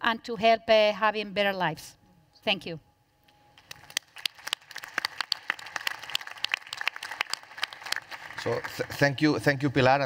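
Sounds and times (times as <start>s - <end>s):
audience applause: 3.7s - 9.7s.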